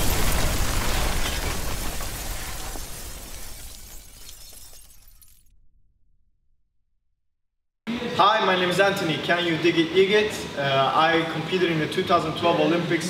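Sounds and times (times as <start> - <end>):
shattering debris crash: 0.0 - 5.5.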